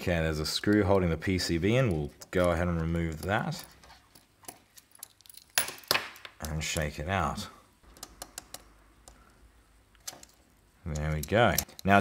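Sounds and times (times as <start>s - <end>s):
small plastic parts clicking: 7.9s - 12.0s.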